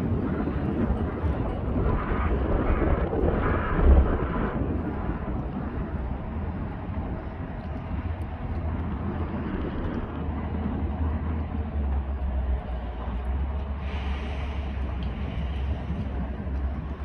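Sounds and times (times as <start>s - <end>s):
ship engines rumbling: 0.0s - 17.0s
wind on microphone: 0.0s - 17.0s.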